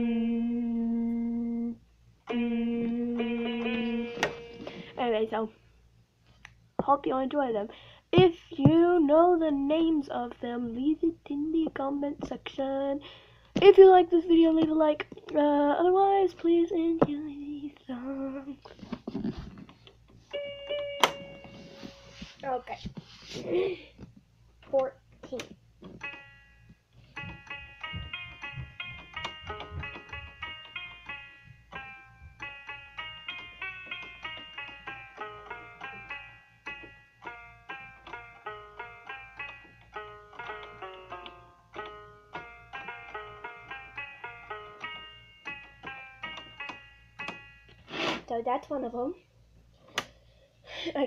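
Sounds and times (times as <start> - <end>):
electronic keyboard notes: 0.0 - 5.2, 20.2 - 22.4, 25.9 - 47.9.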